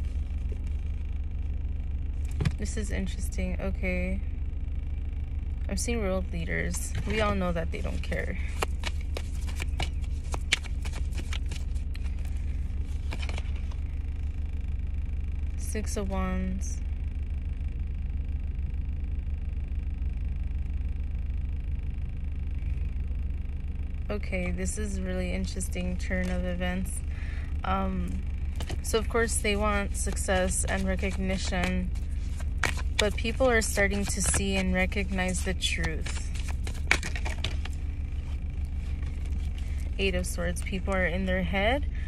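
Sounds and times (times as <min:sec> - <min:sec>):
car engine humming: 0:00.0 - 0:17.6, 0:21.9 - 0:42.0.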